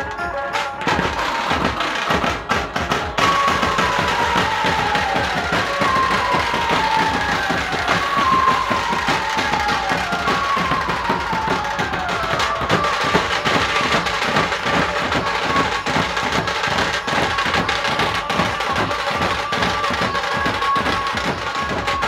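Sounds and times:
fast drumming: 0.0s - 22.0s.

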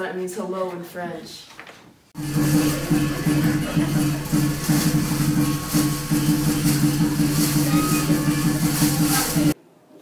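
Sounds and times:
bright cymbal-like crashes: 2.2s - 9.6s
dragon dance music: 2.2s - 9.6s.

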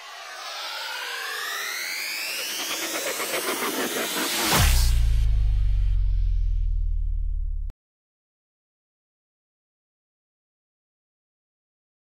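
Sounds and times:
tones gliding upward in pitch: 0.0s - 4.9s
swelling rush: 0.0s - 6.4s.

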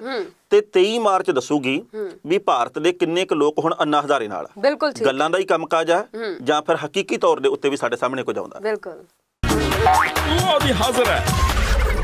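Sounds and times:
promo music with rising slide: 9.4s - 12.0s.

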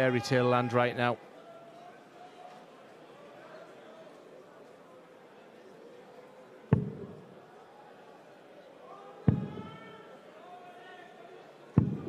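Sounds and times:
crowd voices in a hall: 0.0s - 12.0s.

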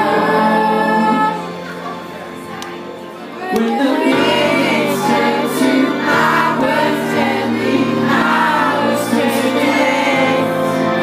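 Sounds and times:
amplified pop backing music: 0.0s - 11.0s.

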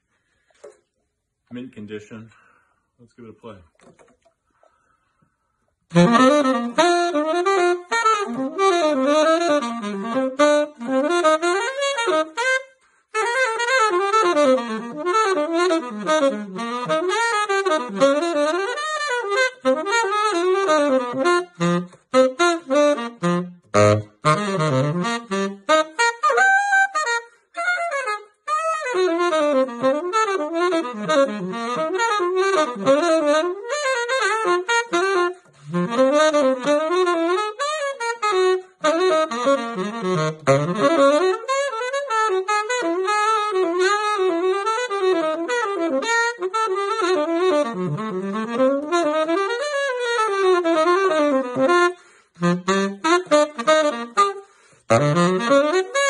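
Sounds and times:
tenor saxophone jazz solo: 3.7s - 56.0s.

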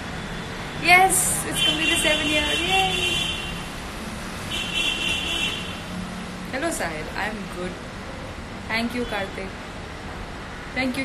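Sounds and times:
street traffic hum: 0.0s - 11.0s.

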